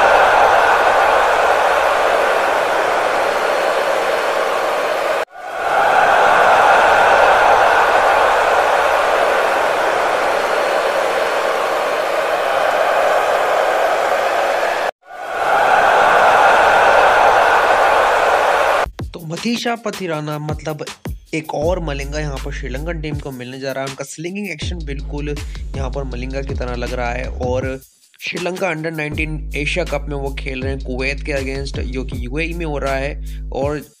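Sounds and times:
crowd ambience hiss: 0.0s - 18.8s.

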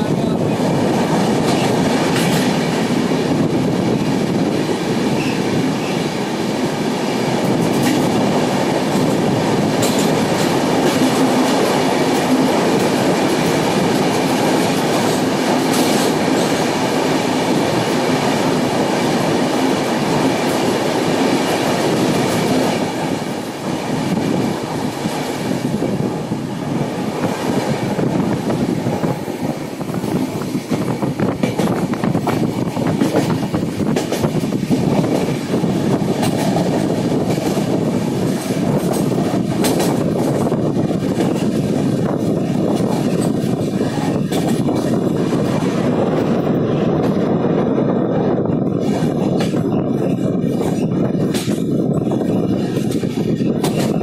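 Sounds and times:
train wheels rumbling on rails: 0.0s - 54.0s.

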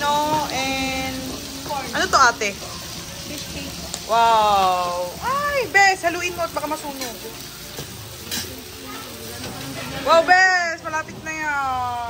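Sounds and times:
pork sizzling on grill pan: 0.0s - 12.0s.

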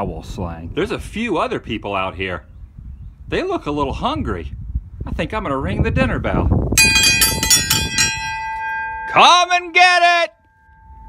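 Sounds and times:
dinner bell clanging: 6.8s - 10.3s.

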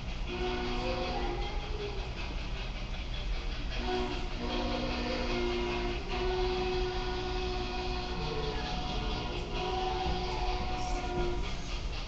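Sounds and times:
moving train rumble: 0.0s - 12.0s
steam locomotive chime whistle: 0.2s - 2.2s, 3.6s - 11.8s.

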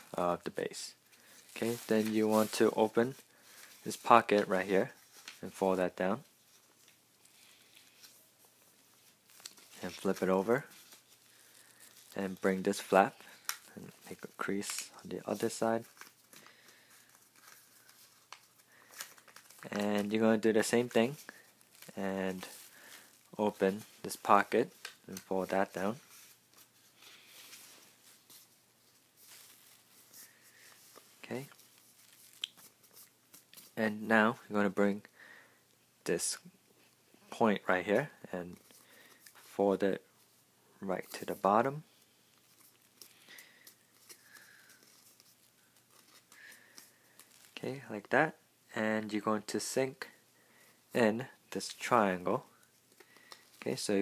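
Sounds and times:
paper folding: 0.0s - 33.8s, 40.9s - 47.6s.

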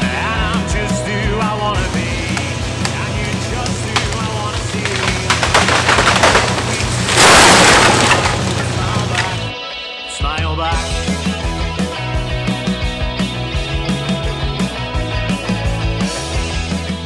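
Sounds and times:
rock music with vocals: 0.0s - 7.2s, 8.0s - 17.0s
tree crashing to the ground: 2.0s - 9.5s.

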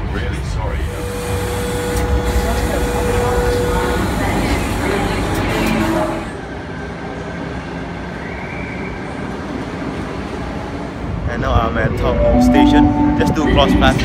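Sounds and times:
electric train rumbling: 0.0s - 14.0s
train motor whine: 0.7s - 6.5s.

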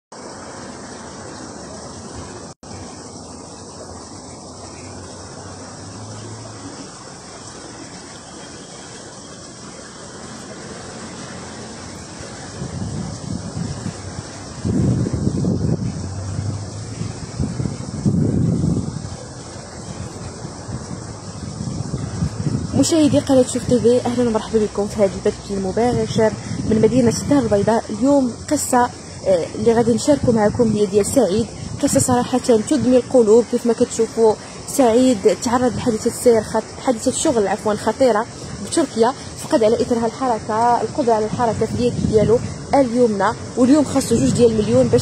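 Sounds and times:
even outdoor hiss: 0.1s - 45.0s
low rumbles: 11.0s - 32.4s.

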